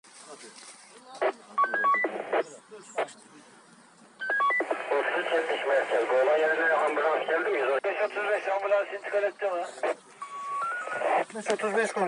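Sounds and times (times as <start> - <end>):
radio clicks: 1.2 - 2.4, 4.2 - 11.8
voice talking over radio: 1.2 - 3.1, 4.6 - 10.0, 10.8 - 12.0
short radio beeps: 1.5 - 2.5, 4.2 - 9.2, 9.8 - 11.3.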